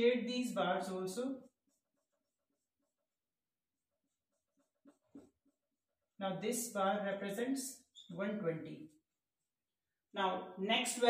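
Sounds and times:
marker strokes on whiteboard: 0.6 - 9.8.

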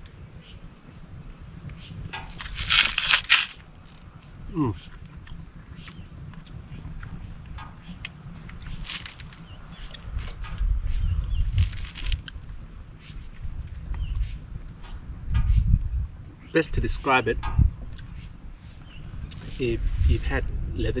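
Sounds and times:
crunchy bites: 2.2 - 3.7, 8.0 - 12.4.

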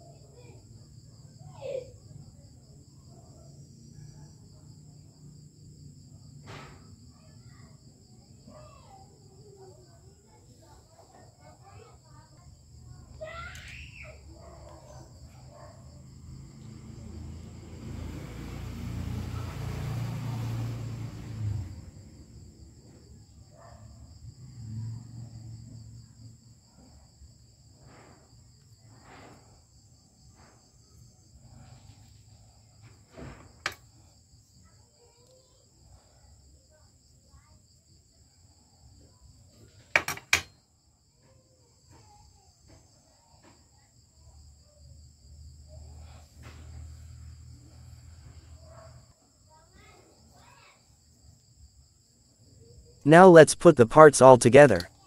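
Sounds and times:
crickets trilling: 0.0 - 53.0.

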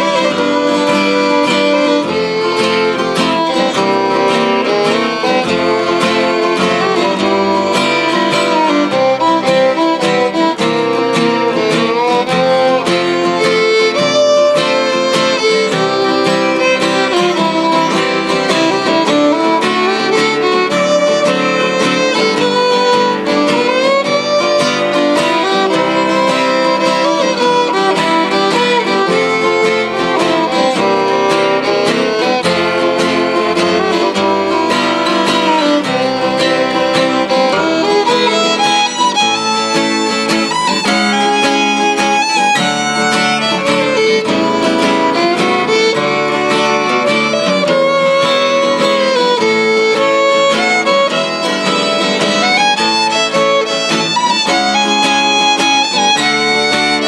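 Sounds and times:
bowed fiddle playing: 0.0 - 57.0
strummed acoustic guitars: 0.0 - 57.0.

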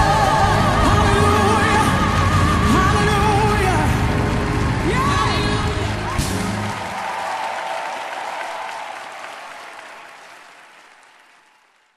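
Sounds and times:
audience applause: 3.0 - 11.9.

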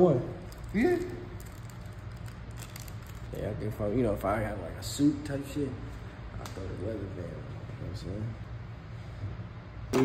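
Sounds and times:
low room hum: 0.0 - 10.0
jewelry and plastic bags rustling: 0.4 - 3.4.

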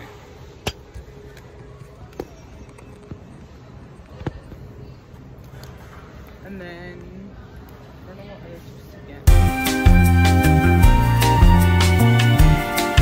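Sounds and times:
supermarket background hum: 0.0 - 9.3.

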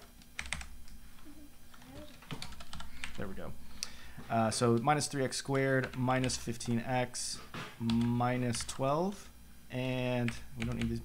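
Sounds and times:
keyboard keys typing: 0.0 - 0.7, 1.7 - 3.2, 10.2 - 11.0.

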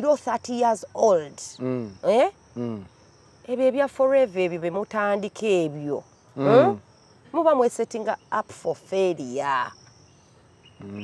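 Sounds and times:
crickets chirping: 0.0 - 11.0
person talking: 6.4 - 6.8.

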